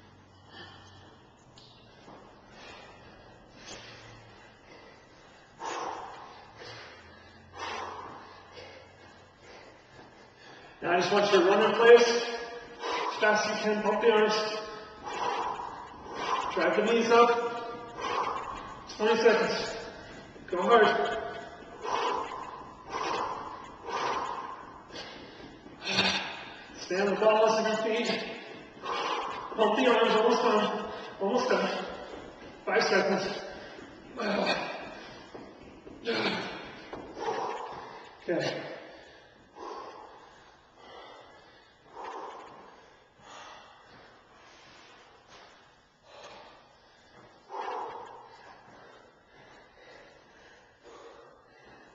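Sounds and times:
man breathing hard: 0.0 - 51.9.

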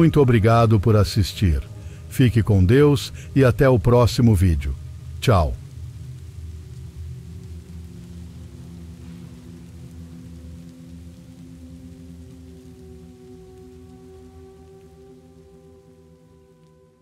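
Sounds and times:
low sustained drone tones: 0.0 - 17.0
soft rain-like hiss: 0.0 - 17.0.

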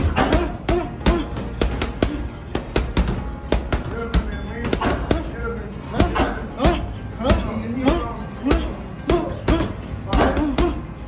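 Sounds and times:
gloves punching heavy bag: 0.0 - 5.3, 5.9 - 10.9.

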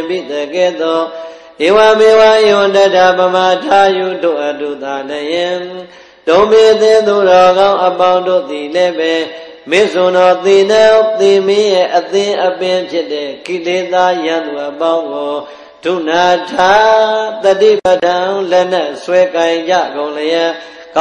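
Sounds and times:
person chanting: 0.0 - 21.0.

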